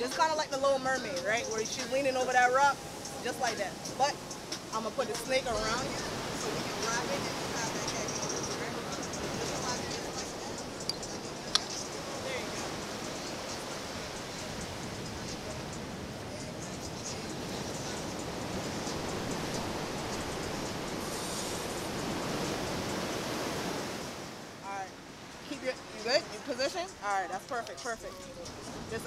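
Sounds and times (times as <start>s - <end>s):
ocean surf breaking: 0.0s - 27.8s.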